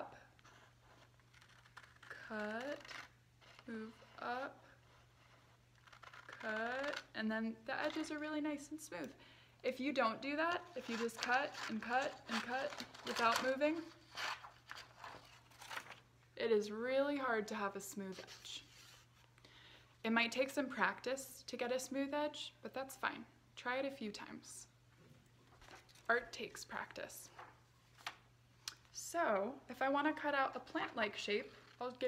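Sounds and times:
scissors cutting paper: 0:00.4 - 0:08.2, 0:10.4 - 0:16.0
paper rustling: 0:10.4 - 0:16.0, 0:25.4 - 0:26.2
scissors snipping paper: 0:10.6 - 0:16.0.

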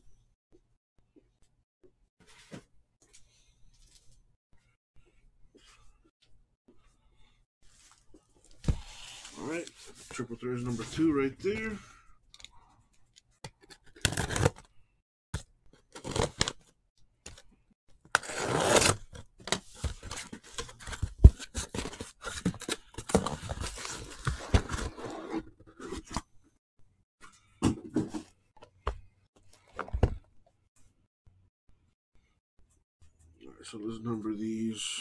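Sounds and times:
boxes scraping and knocking: 0:19.6 - 0:26.2, 0:27.6 - 0:28.4.

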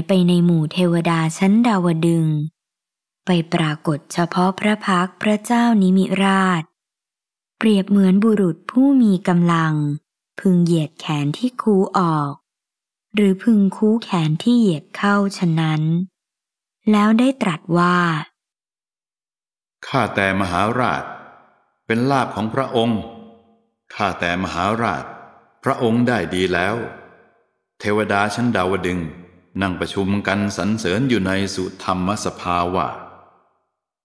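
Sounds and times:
man narrating: 0:19.8 - 0:21.1, 0:21.9 - 0:23.2, 0:23.9 - 0:26.9, 0:27.8 - 0:33.0
person reciting: 0:19.8 - 0:21.1, 0:21.9 - 0:23.2, 0:23.9 - 0:26.9, 0:27.8 - 0:33.0
lower voice speaking: 0:21.9 - 0:23.1, 0:25.7 - 0:26.9.

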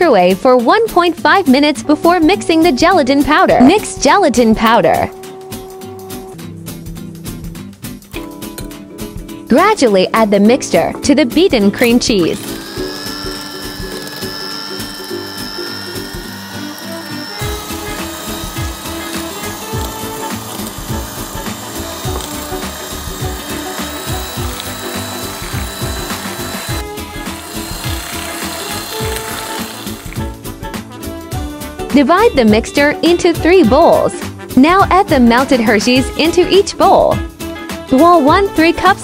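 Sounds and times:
electric hand mixer whipping: 0:11.8 - 0:30.6.

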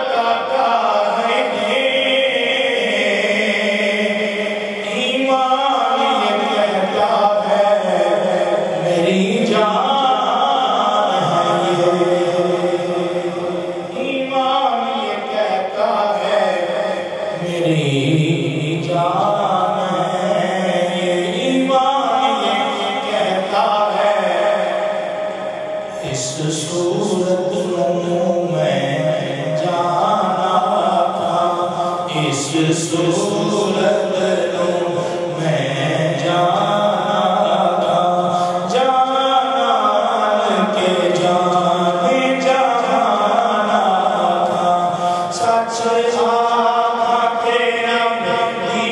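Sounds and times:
man chanting devotionally: 0:00.0 - 0:48.9
man singing unaccompanied: 0:00.0 - 0:48.9.

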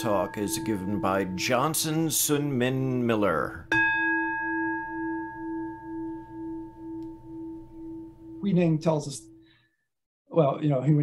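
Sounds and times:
singing bowl ringing: 0:00.0 - 0:02.6, 0:03.7 - 0:09.6.

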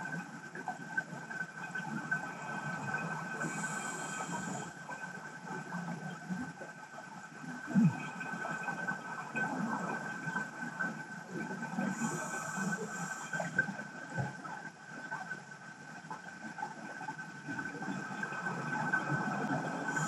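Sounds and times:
thin steady whine: 0:00.0 - 0:20.0.

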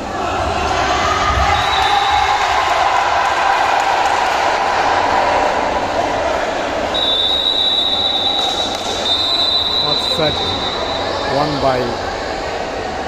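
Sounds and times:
crowd noise in sports hall: 0:00.0 - 0:13.0
high-pitched whistle: 0:07.0 - 0:11.3.

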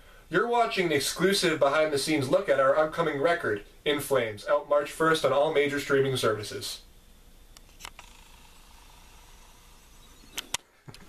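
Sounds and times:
sharp clicks: 0:10.3 - 0:11.0.

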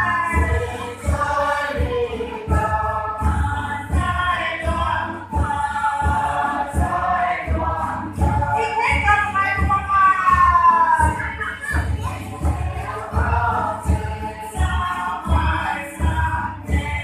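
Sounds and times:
group of voices singing: 0:00.0 - 0:17.0.

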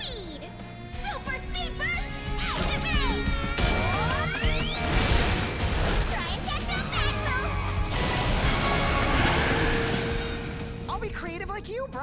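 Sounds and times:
cartoon soundtrack music: 0:00.0 - 0:12.0.

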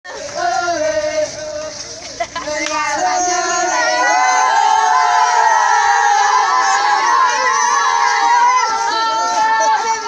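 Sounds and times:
boys shouting and cheering: 0:02.4 - 0:10.0.

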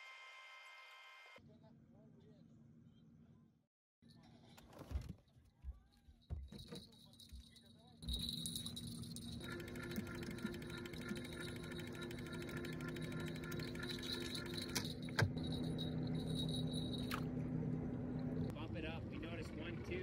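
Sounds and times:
outboard motor running: 0:08.0 - 0:20.0.

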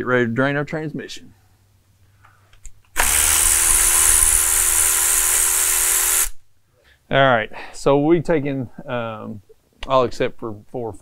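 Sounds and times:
cordless power tool spinning: 0:02.9 - 0:06.4.

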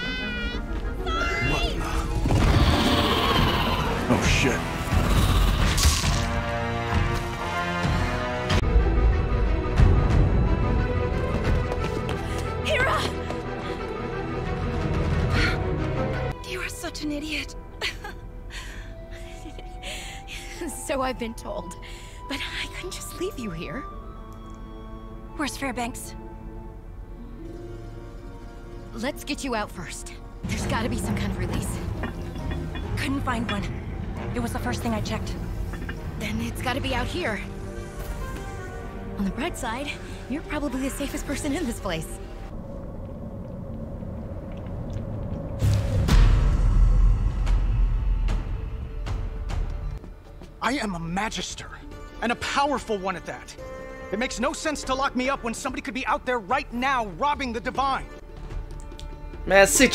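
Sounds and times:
soft dramatic film score: 0:00.0 - 0:59.9
low rumbling drone: 0:41.9 - 0:50.0.

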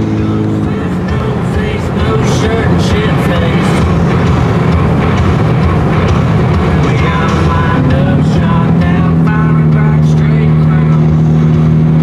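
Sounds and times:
car engine and road noise: 0:00.0 - 0:12.0
music from car stereo: 0:00.0 - 0:12.0.

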